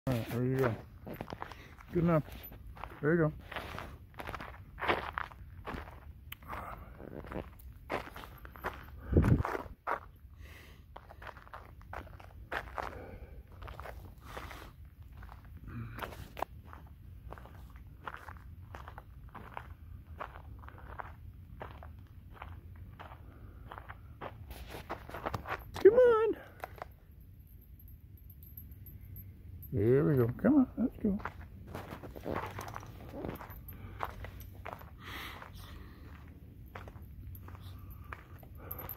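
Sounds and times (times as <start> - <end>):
footsteps on gravel trail: 0.1 - 27.0, 31.0 - 38.9.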